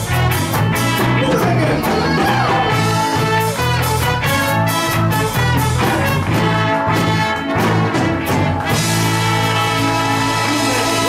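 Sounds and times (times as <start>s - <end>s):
live ska band: 0.0s - 11.0s
brass section holding a chord: 2.7s - 11.0s.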